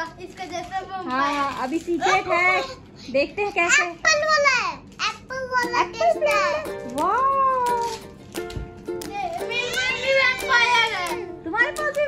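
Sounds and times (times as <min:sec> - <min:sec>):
light background music: 0:05.4 - 0:12.0.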